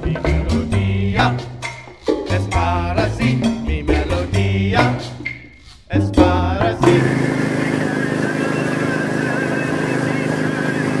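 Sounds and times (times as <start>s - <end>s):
music: 0.0s - 11.0s
boat engine running: 6.2s - 11.0s
water noise: 6.8s - 11.0s.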